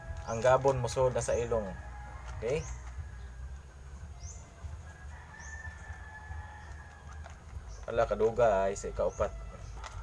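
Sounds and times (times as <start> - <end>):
low steady rumble: 0.0 - 10.0
distant rooster crowing: 1.3 - 7.8.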